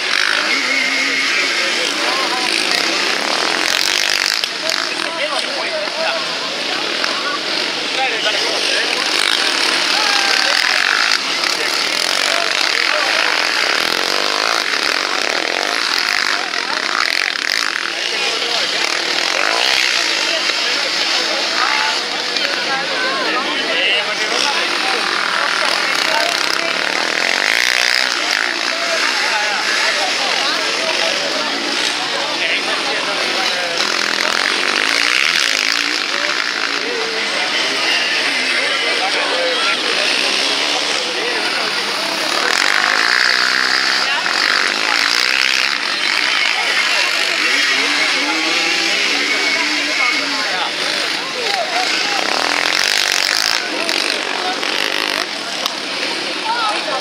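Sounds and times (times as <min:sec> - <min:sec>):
quad engines revving: 0:00.0 - 0:57.0.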